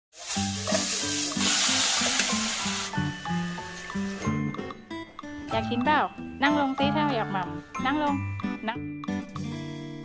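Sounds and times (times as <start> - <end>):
food sizzling in hot oil: 0.1 - 4.4
background music: 0.2 - 10.0.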